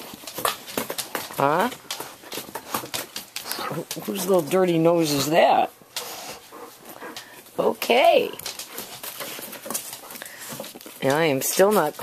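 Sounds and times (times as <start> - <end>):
dog breathing and sniffing: 0.0 - 12.0.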